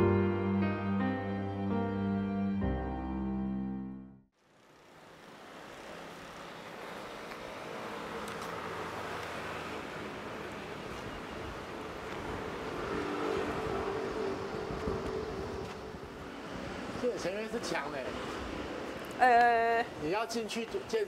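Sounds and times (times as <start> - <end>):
road traffic hum: 4.4 - 21.0.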